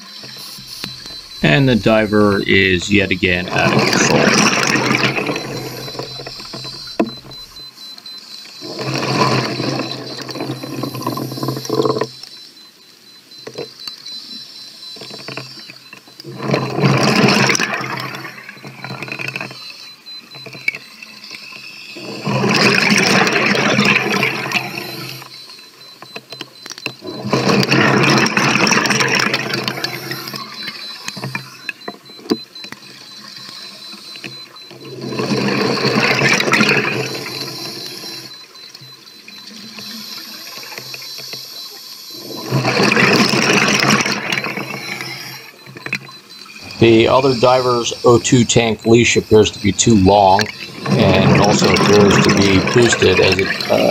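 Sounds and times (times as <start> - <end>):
exhaled bubbles rushing: 50.4 - 53.9.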